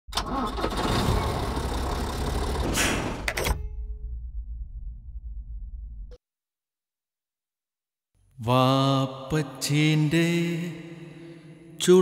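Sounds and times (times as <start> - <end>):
vehicle engine starting and running: 0.1 - 5.5.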